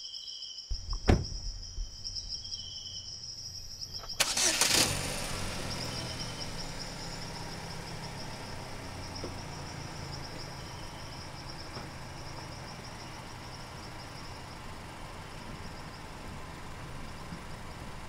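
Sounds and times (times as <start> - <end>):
insects chirping: 0.0 - 18.0
thump: 0.7 - 2.4
car engine starting and idling: 0.7 - 18.0.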